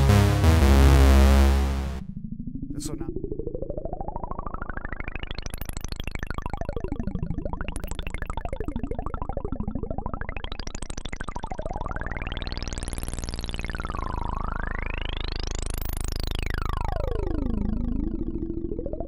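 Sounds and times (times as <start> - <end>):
pulsing synthesizer tone sweeping: 0.0 - 2.0.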